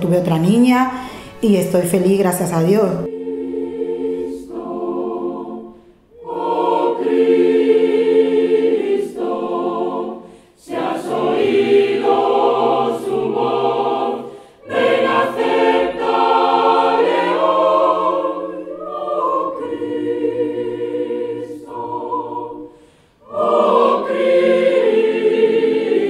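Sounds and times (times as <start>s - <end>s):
mixed choir singing: 3.0s - 26.0s.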